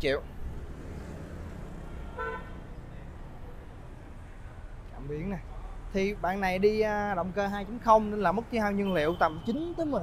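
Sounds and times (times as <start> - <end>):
road traffic rumble: 0.0 - 10.0
vehicle horn toot: 2.1 - 2.6.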